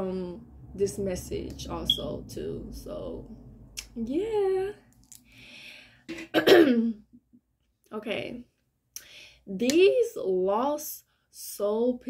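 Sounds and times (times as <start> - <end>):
woman clearing her throat: 6.1 - 7.0.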